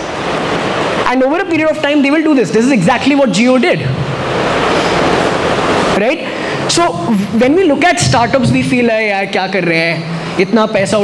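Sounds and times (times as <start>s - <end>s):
speech: 6.0s - 11.0s.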